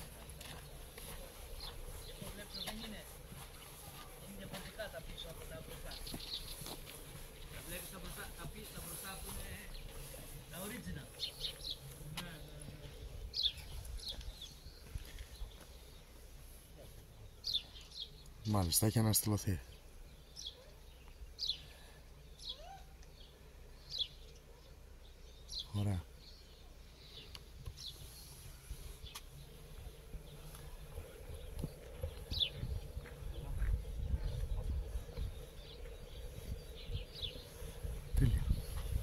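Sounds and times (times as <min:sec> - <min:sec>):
small birds chirping: 0:00.0 - 0:39.0
low microphone rumble: 0:28.3 - 0:39.0.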